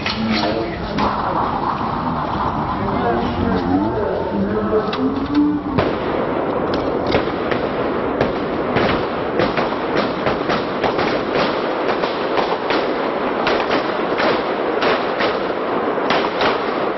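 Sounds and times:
gunshots: 0.0 - 16.9
steady noisy background: 0.0 - 16.9.

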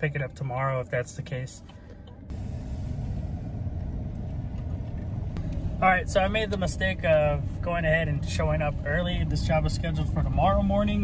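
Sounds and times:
truck driving low rumble: 0.0 - 11.0.

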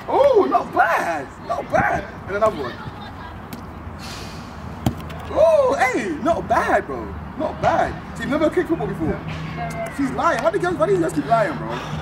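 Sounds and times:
foot kicking football: 4.8 - 5.3.

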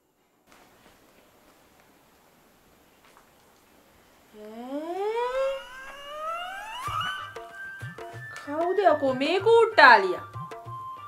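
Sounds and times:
rising-pitch tone effect: 4.4 - 7.8
music: 5.6 - 11.0.

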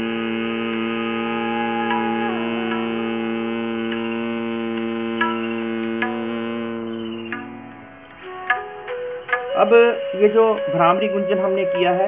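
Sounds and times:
man humming a steady note: 0.0 - 12.0.

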